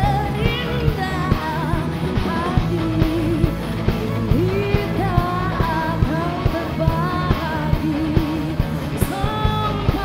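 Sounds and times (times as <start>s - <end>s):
bass: 0.0s - 10.0s
keyboard: 0.0s - 10.0s
person singing with vibrato: 0.0s - 10.0s.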